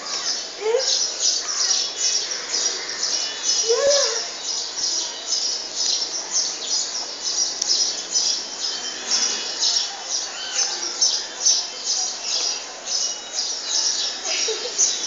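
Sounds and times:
bird chirping: 0.0s - 15.0s.

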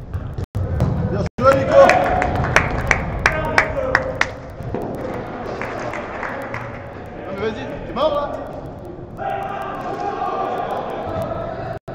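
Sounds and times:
players shouting: 1.4s - 4.3s, 9.1s - 11.8s.

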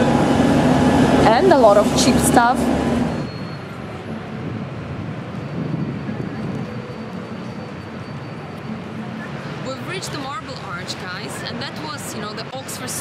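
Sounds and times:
city traffic rumble: 0.0s - 13.0s.

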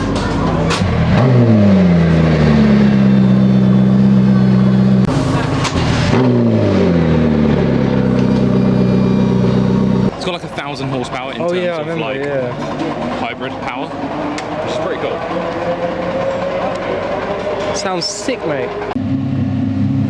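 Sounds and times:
car engine revving and idling: 0.0s - 20.0s.

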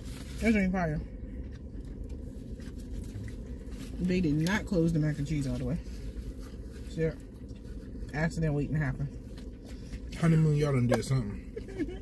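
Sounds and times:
takeout food rustling: 0.0s - 0.7s, 1.3s - 4.3s, 5.1s - 8.1s
low hum inside car: 0.0s - 12.0s.

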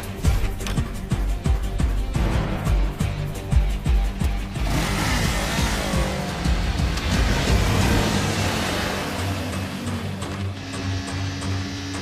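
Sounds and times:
background music: 0.0s - 12.0s
motorcycle engine revving and passing: 4.2s - 12.0s.

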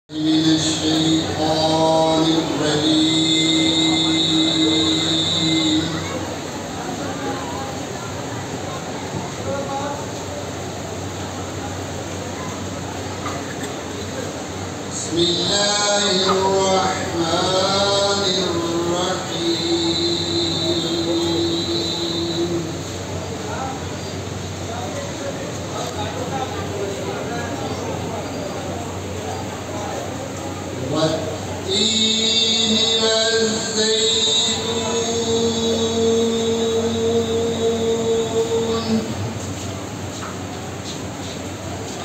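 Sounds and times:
man reciting melodically: 0.1s - 6.2s, 14.9s - 22.9s, 30.8s - 39.4s.

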